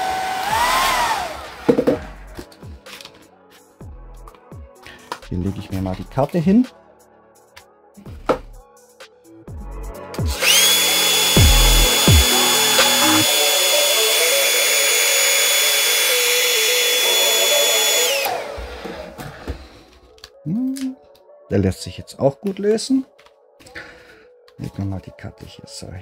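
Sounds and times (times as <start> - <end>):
hair dryer whining: 0.0 - 2.0, 10.3 - 19.6
hair dryer airflow hiss: 10.4 - 18.8.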